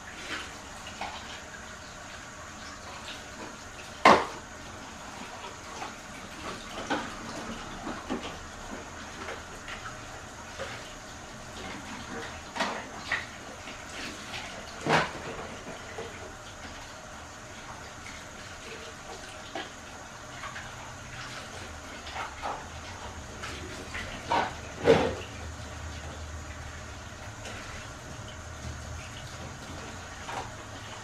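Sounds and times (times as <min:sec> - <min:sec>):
water running: 0:00.0 - 0:31.0.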